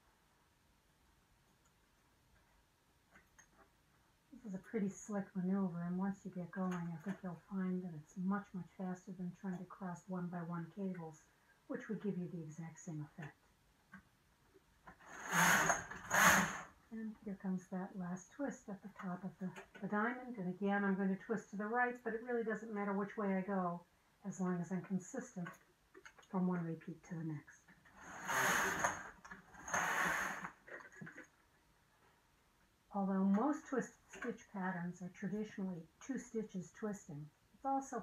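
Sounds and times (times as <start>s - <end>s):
knitting machine carriage rattling: 15.0s - 16.6s, 27.9s - 31.3s.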